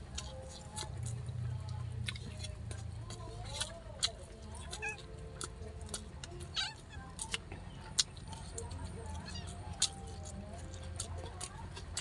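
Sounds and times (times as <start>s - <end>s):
cat meowing: 6.5s - 7.0s, 9.2s - 9.6s.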